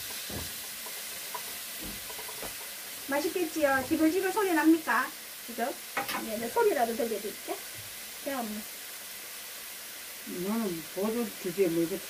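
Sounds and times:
meat sizzling in a pan: 0:00.0 - 0:12.0
metal tongs clicking on pan: 0:00.8 - 0:02.7.

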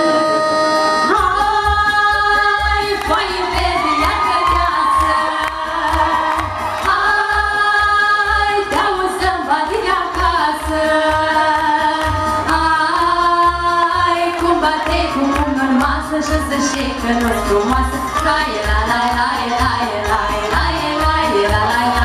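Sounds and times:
keyboard accompaniment: 0:00.0 - 0:22.0
women singing: 0:00.2 - 0:22.0.

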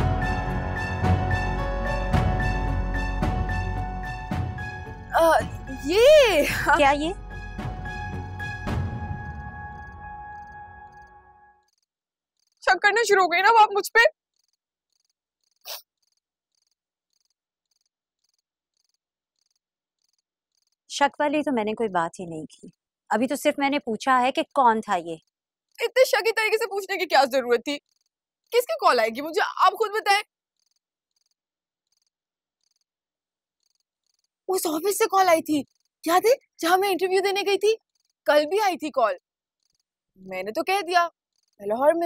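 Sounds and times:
crickets chirping: 0:09.8 - 0:12.6
faint cricket chirps: 0:14.4 - 0:20.8, 0:30.6 - 0:32.9, 0:33.6 - 0:34.3.

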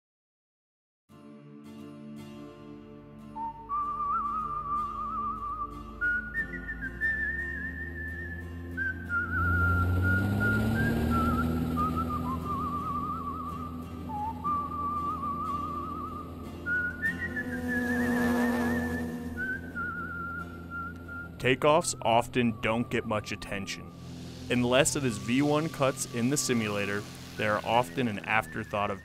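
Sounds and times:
whistled melody with vibrato: 0:03.2 - 0:29.0
low rushing drone: 0:07.6 - 0:29.0.

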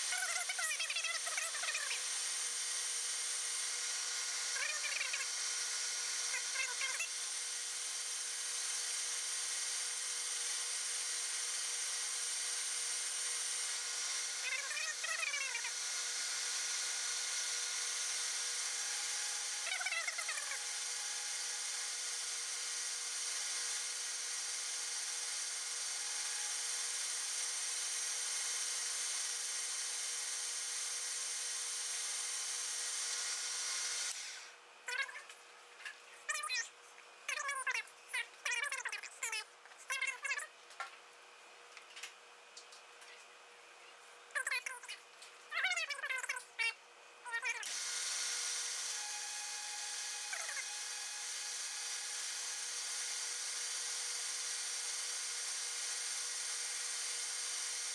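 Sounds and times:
metal lathe cutting: 0:00.0 - 0:34.5, 0:47.6 - 0:57.9.

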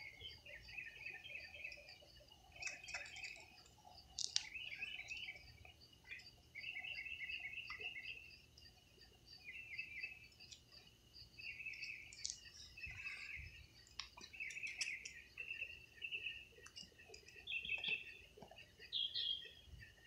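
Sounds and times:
high pulsing insect drone: 0:00.0 - 0:20.0
night insects chirping: 0:00.0 - 0:20.0.

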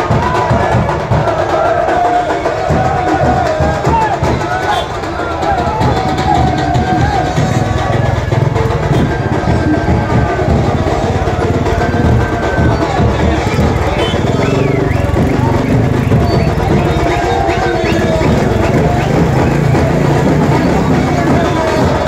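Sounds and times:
crowd shouting and chanting: 0:00.0 - 0:22.0
drums beating fast: 0:00.0 - 0:22.0.

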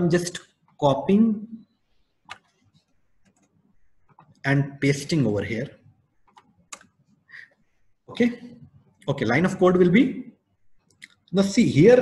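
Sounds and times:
keyboard and mouse clicks: 0:02.2 - 0:04.4, 0:06.2 - 0:07.2.

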